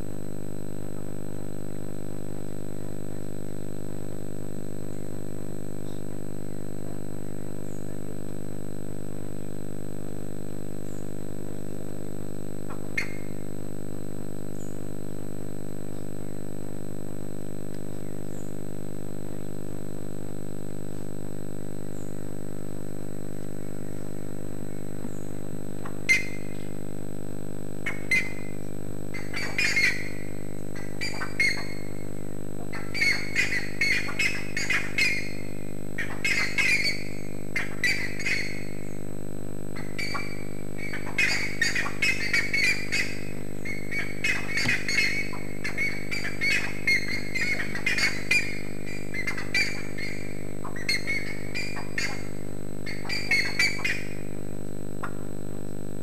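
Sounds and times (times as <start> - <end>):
low hum: 0.0 - 56.0
birds squawking: 12.7 - 13.4, 26.1 - 26.6, 27.8 - 39.0, 39.8 - 54.4.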